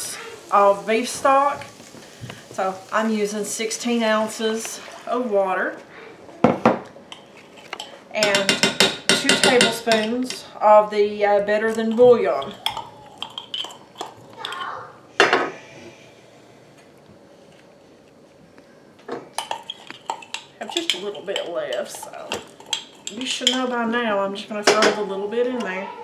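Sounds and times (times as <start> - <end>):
utensils clinking against dishes: 7.1 - 10.5, 11.7 - 15.5, 19.4 - 23.7.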